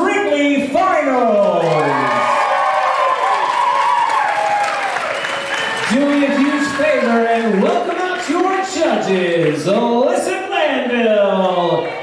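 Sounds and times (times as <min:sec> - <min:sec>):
crowd cheering and whooping: 0:01.5 - 0:08.6, 0:11.2 - 0:12.0.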